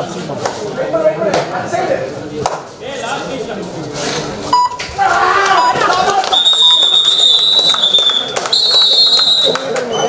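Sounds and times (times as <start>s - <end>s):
men's voices in a large hall: 0.0s - 7.0s.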